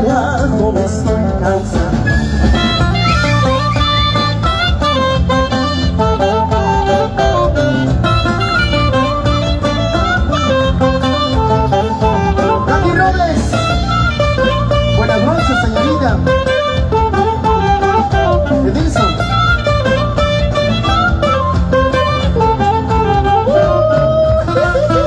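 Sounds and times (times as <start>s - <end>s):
live band playing: 0.0s - 25.0s
flute melody: 1.7s - 25.0s.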